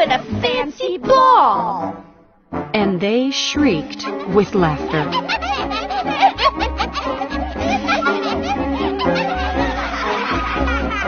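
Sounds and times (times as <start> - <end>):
background music: 0.0 - 11.0
women shrieking with laughter: 5.1 - 11.0.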